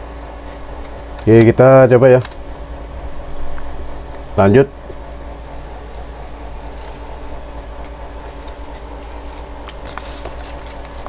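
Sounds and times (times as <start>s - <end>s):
low equipment hum: 0.0s - 11.0s
hands handling parts: 6.7s - 11.0s.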